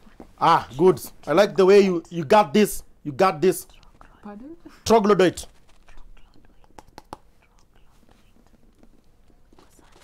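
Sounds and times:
people whispering: 3.5 - 5.1, 5.8 - 6.8, 9.5 - 10.0.

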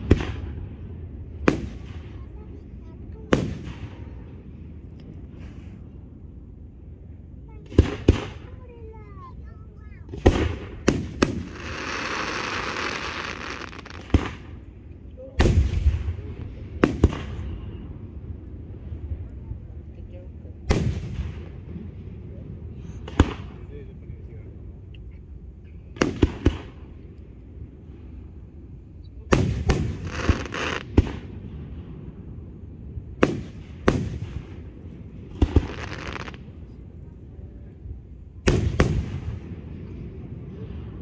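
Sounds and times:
fireworks bursting with bangs: 0.0 - 4.4, 7.5 - 9.1, 9.9 - 17.9, 20.6 - 22.2, 22.9 - 23.8, 25.8 - 27.0, 29.2 - 32.2, 32.8 - 36.9, 38.3 - 41.0.

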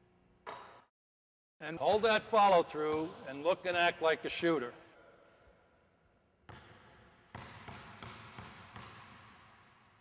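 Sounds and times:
basketball bouncing on hardwood floor: 6.5 - 9.4.

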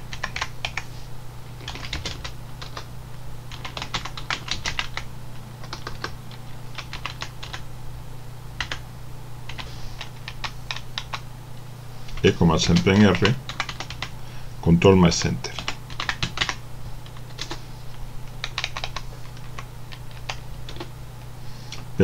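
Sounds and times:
steady low hum: 0.0 - 22.0
typing on a keyboard: 0.1 - 0.8, 1.6 - 2.9, 3.5 - 5.0, 5.6 - 6.2, 6.8 - 7.6, 8.6 - 8.8, 9.5 - 11.2, 12.7 - 14.1, 15.6 - 17.6, 18.4 - 20.9.

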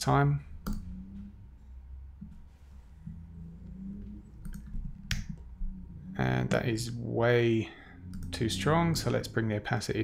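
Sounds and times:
steady low hum: 0.0 - 10.0
computer mouse clicks: 4.4 - 5.4, 8.1 - 8.3.

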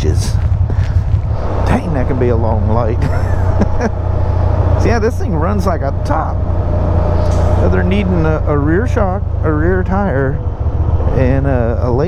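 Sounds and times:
motorcycle engine running: 0.0 - 12.0
person laughing: 2.9 - 4.1.

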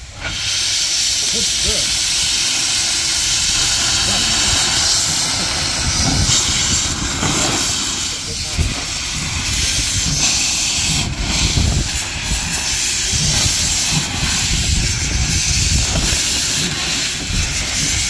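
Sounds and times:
steam locomotive hissing steam: 0.0 - 18.0.

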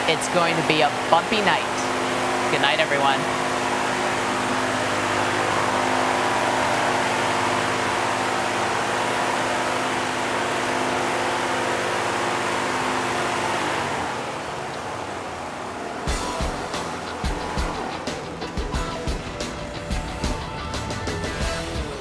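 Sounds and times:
steady rushing noise: 12.6 - 20.7.

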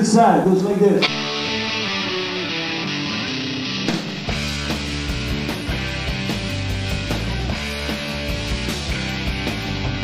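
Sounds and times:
sharp guitar strike: 1.0 - 6.4
electric guitar picking notes: 1.0 - 10.0.

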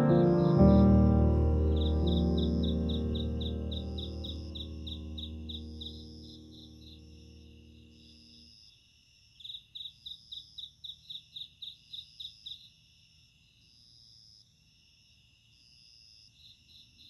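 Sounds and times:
crickets steady high trills: 0.2 - 17.0
cricket fast high chirps: 1.6 - 8.6.

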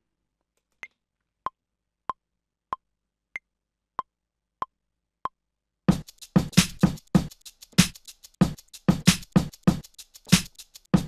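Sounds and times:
drum pattern: 5.9 - 11.0.

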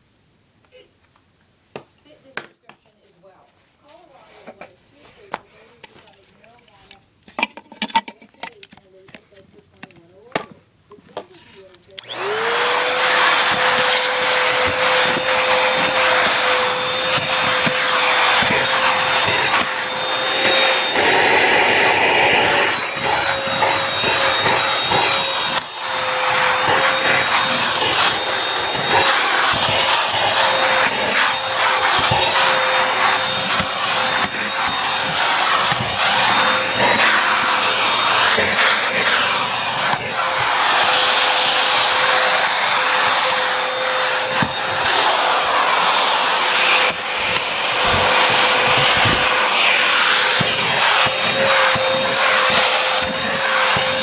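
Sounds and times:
vacuum cleaner running: 11.2 - 54.0
vacuum nozzle on carpet: 11.2 - 54.0.

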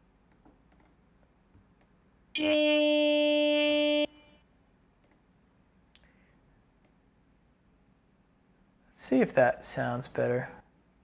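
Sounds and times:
steady held synth note: 2.4 - 4.4.

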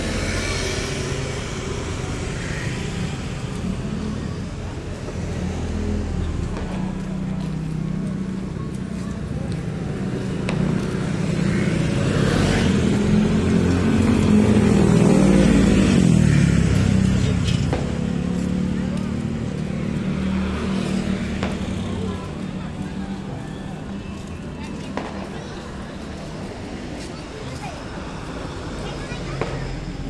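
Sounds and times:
hum of traffic engines: 0.0 - 30.0
people's voices: 0.0 - 30.0.

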